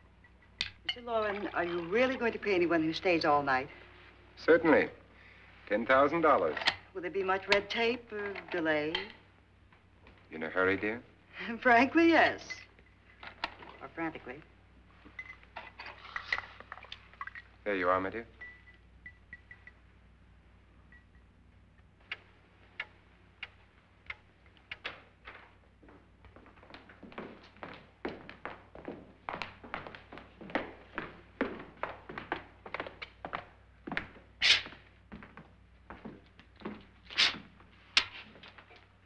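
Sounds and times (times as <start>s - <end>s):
footsteps on hard floor: 25.3s - 37.6s.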